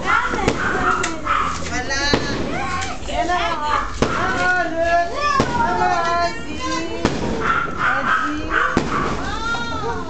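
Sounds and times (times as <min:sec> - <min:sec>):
firecracker bang: 0:00.3 - 0:01.1, 0:02.0 - 0:02.7, 0:03.9 - 0:04.6, 0:05.3 - 0:06.0, 0:06.9 - 0:07.8, 0:08.6 - 0:09.5.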